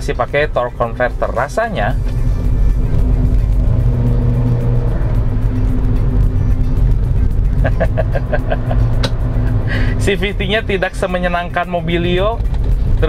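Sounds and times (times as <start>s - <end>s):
background music: 0.0s - 13.0s
car engine droning: 0.0s - 13.0s
road noise: 0.0s - 13.0s.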